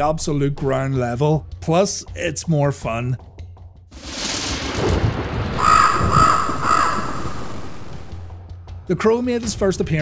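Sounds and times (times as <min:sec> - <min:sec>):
low rumble: 0:03.9 - 0:08.6
crow cawing: 0:05.5 - 0:08.2.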